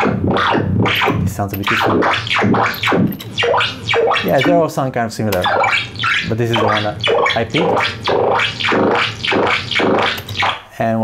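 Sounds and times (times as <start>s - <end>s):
bubbly synthesizer swoops: 0.0s - 4.6s, 5.4s - 10.6s.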